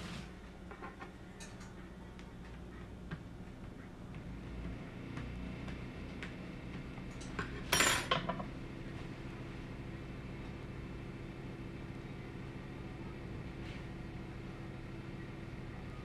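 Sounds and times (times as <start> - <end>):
fork clattering onto wooden table: 7.7 - 8.4.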